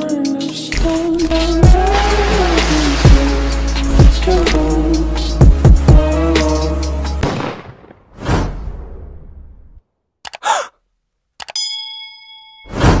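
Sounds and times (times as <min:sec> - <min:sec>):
clicks: 0:10.2 - 0:10.5, 0:11.4 - 0:11.6
bell-like ding: 0:11.6 - 0:13.0.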